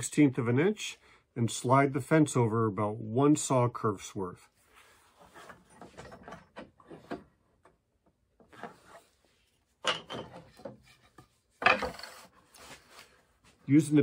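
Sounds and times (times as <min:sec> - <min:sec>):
knocks and rubbing of metal and wood: 0:05.2 - 0:09.2, 0:09.8 - 0:12.4.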